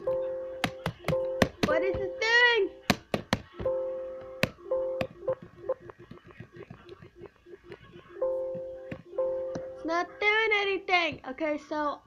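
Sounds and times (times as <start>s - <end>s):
sharp clicks and taps: 0.1s - 2.1s, 2.9s - 9.7s
two-note electronic tone: 3.6s - 5.9s, 8.2s - 9.9s.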